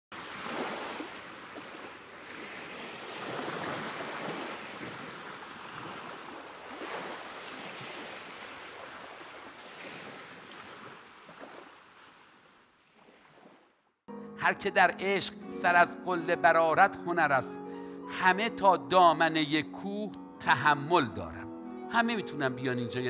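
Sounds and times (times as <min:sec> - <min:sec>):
ocean surf waves: 0:00.1 - 0:13.7.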